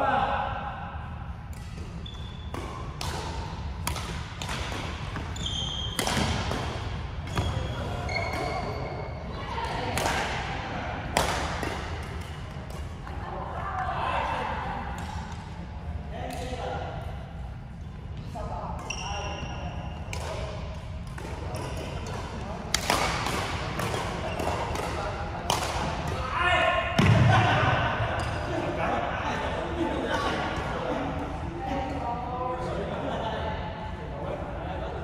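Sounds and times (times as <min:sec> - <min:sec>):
racket hitting shuttlecock: 0:01.5 - 0:08.8, 0:11.1 - 0:12.9, 0:20.1 - 0:26.2
shoe squeaks: 0:02.0 - 0:02.5, 0:05.3 - 0:06.0, 0:07.3 - 0:09.1, 0:18.8 - 0:20.0.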